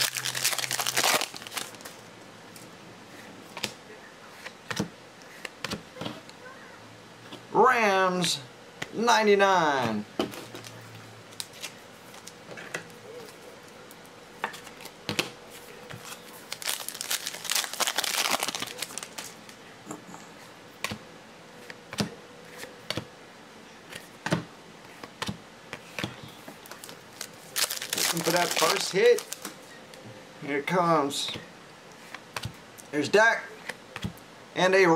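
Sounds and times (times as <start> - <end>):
foil wrapper crinkling: 0.0 - 2.0, 16.0 - 19.5, 26.6 - 29.6.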